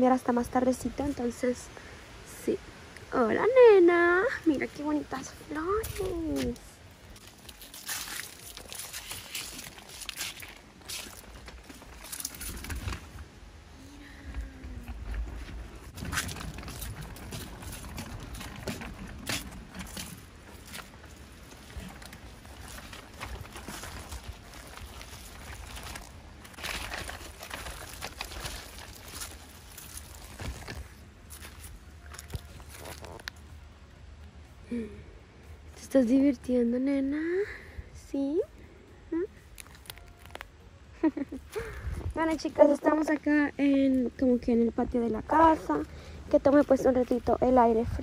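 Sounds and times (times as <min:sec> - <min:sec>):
rustling of grass and leaves: 0:00.0 - 0:37.8, 0:38.6 - 0:48.0
stroller wheels clicking and rattling: 0:04.3 - 0:13.4, 0:14.2 - 0:34.4, 0:39.1 - 0:48.0
low rumble: 0:12.5 - 0:35.8.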